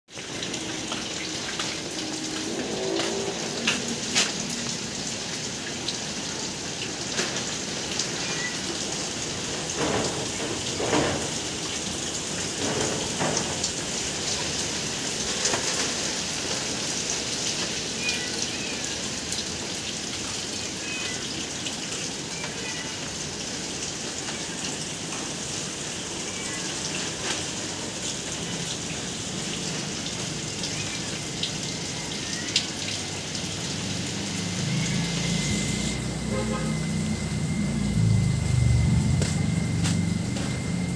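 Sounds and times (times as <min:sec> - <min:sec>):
drips and splashes: 0:00.1 - 0:40.9
rain falling on foliage: 0:00.1 - 0:40.9.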